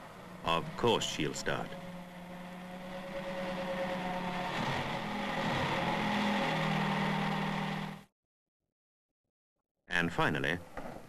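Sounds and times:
car engine running: 0.0 - 8.1.

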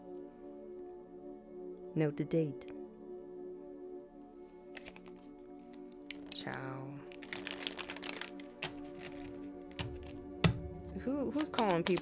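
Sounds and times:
soft ambient music: 0.0 - 12.0
deck of cards clicking and rustling: 4.7 - 12.0.

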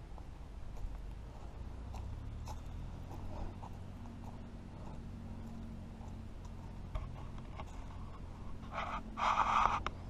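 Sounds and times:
footsteps crunching on sandy path: 0.0 - 10.0.

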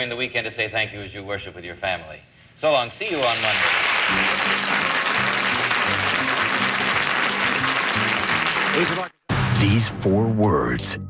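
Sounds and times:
audience applauding: 3.2 - 9.2
theme music with low notes: 4.0 - 11.0.

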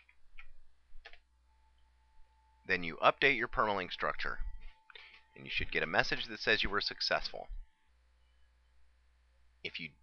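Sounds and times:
keyboard and mouse clicks: 0.0 - 1.2
faint low hum: 0.0 - 10.0.

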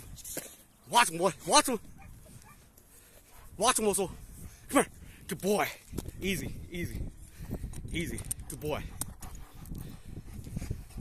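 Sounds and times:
dog breathing and panting: 7.4 - 11.0.

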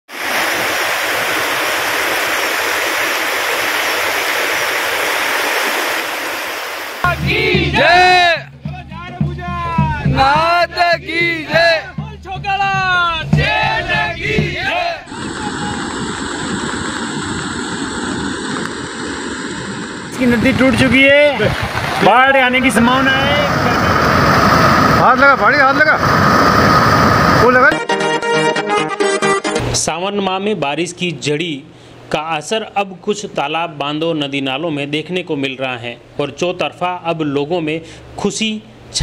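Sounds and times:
water rushing over a dam: 0.1 - 7.3, 15.1 - 27.7.

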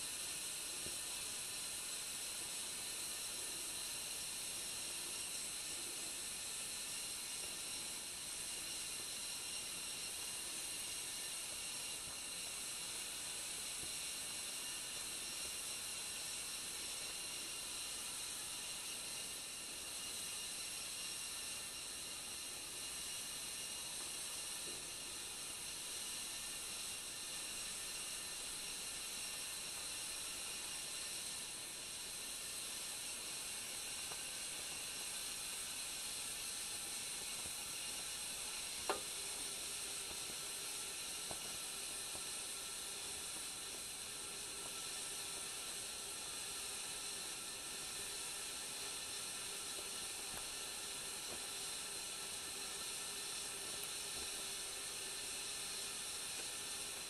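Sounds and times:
kettle heating with faint hiss: 0.0 - 57.0.

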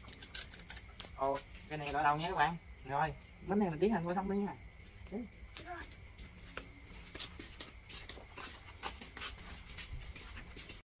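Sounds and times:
crickets chirping: 0.0 - 10.8
footsteps on hard ground: 0.8 - 2.6, 4.6 - 10.8.

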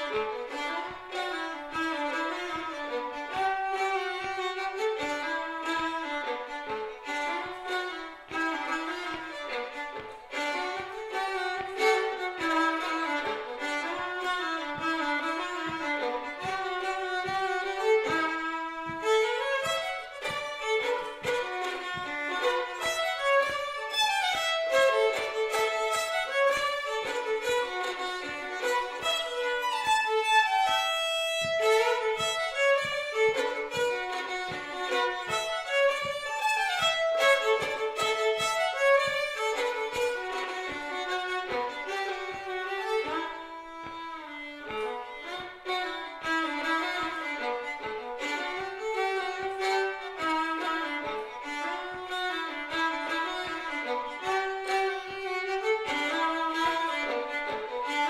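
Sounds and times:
solo fiddle playing a reel: 0.0 - 58.0.

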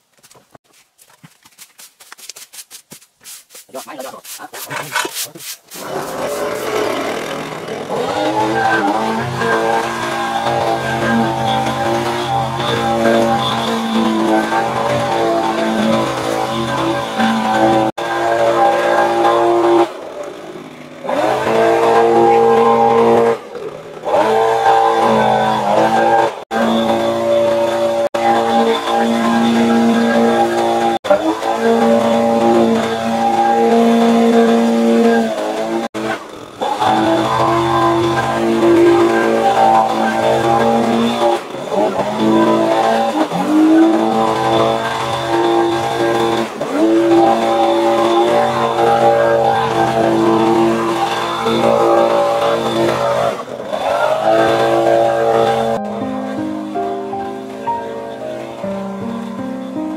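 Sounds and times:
leaf blower engine running: 3.6 - 59.9.

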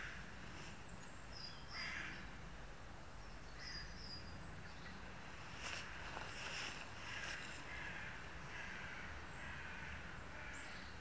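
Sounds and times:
crows cawing: 1.7 - 2.2, 7.0 - 10.9.

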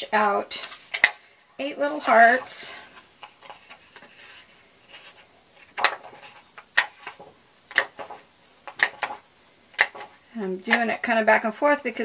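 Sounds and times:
paper punch clicking: 7.7 - 8.1.

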